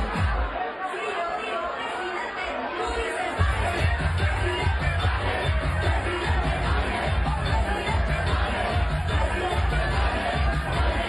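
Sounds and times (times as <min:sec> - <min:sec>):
crowd shouting and chattering: 0:00.0 - 0:11.0.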